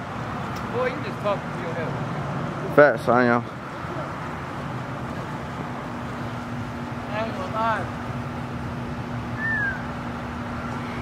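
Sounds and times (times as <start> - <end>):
constant low hum: 0.0 - 11.0
falling whistle-like call: 9.4 - 9.9, 10.6 - 11.0.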